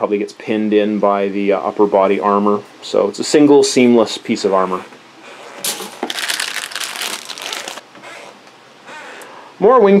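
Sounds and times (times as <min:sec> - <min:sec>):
plastic bags crinkling: 0:05.5 - 0:07.8.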